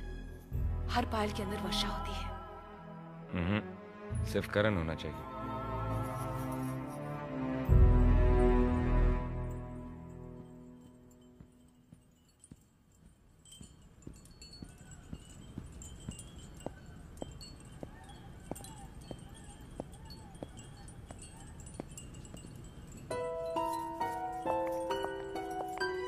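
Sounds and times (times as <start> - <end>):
chimes tinkling: 9.4 - 26.0.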